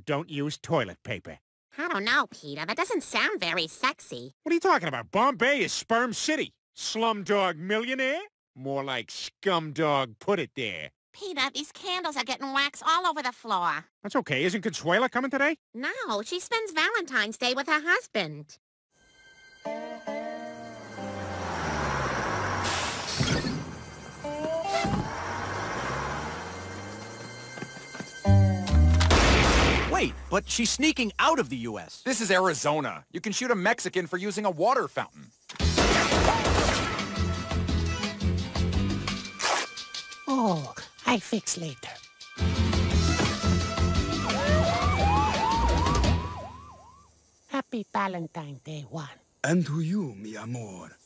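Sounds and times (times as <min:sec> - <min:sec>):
emergency siren yelp: 0:19.6 - 0:29.1, 0:43.8 - 0:47.1
bus engine running: 0:20.5 - 0:29.2
air brakes hissing: 0:21.8 - 0:23.6
brief high squeal: 0:22.6 - 0:25.1
background music with low beat: 0:27.6 - 0:31.6.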